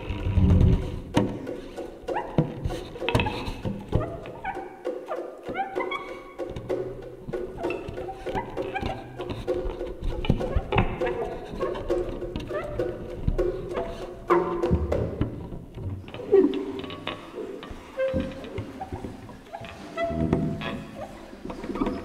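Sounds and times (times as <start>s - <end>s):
percussive strikes: 0.5s - 20.6s.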